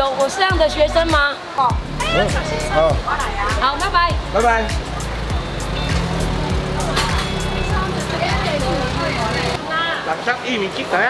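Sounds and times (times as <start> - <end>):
music: 0.0 - 9.6
voices: 0.0 - 10.8
vehicle engine running: 1.7 - 9.6.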